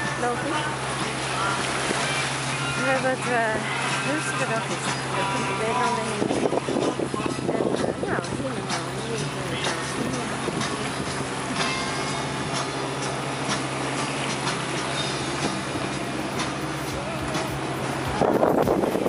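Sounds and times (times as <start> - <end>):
steady low drone: 0.0 - 19.0
wind and water rushing: 0.0 - 19.0.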